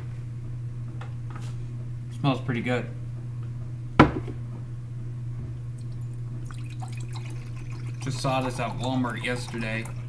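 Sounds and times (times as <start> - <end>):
steady low hum: 0.0 - 10.0
knock on plastic bottle: 4.0 - 4.4.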